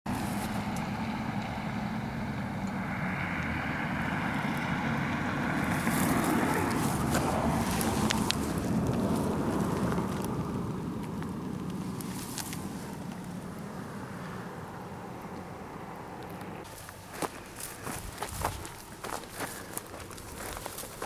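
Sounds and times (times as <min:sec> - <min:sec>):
wind on microphone: 0:17.9 - 0:18.8.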